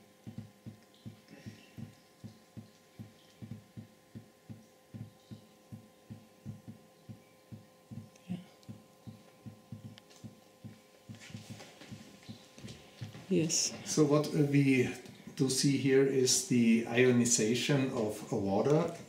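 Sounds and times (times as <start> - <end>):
water dripping into vessel: 0.0 - 12.6
faint steady hum: 0.0 - 19.0.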